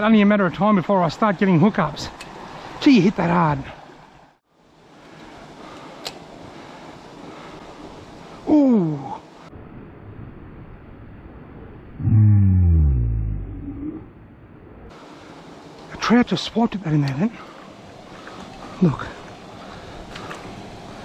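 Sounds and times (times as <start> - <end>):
creek water running: 0.0 - 9.5, 14.9 - 21.0
man groaning: 8.5 - 9.2, 12.0 - 14.0.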